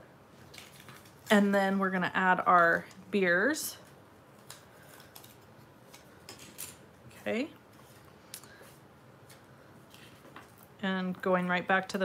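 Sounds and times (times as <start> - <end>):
paper crinkling and clicking: 0.5 - 1.3, 3.8 - 6.8.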